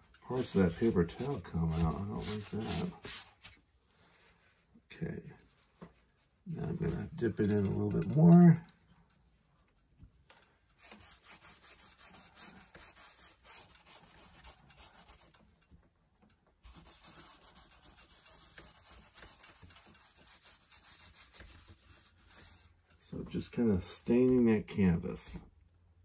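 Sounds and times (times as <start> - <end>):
paper towel rubbing paint: 0.3 - 3.6, 10.8 - 15.4, 16.6 - 22.7.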